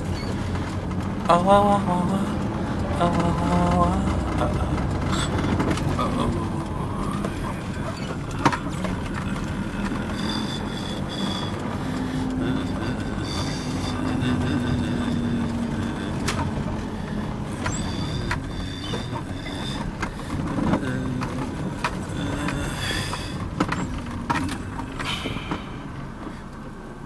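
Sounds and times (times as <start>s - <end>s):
car engine and tyres rumbling: 0.0s - 27.0s.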